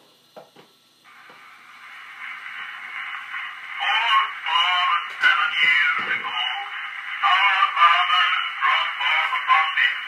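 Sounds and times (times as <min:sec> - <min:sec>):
phonograph cylinder surface hiss: 0:00.0 - 0:10.0.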